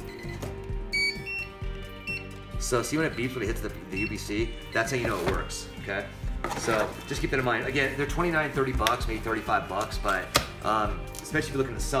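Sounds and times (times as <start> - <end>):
barcode scanner beep: 0.0 - 2.4
background music: 0.0 - 12.0.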